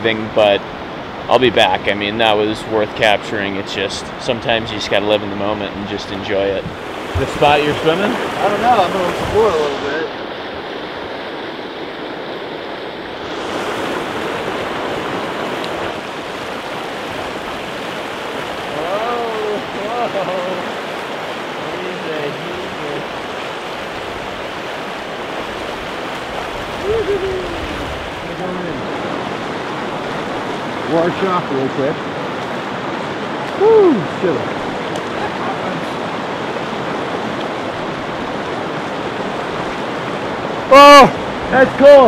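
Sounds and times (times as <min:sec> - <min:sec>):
stream rushing over rocks: 0:00.0 - 0:42.0.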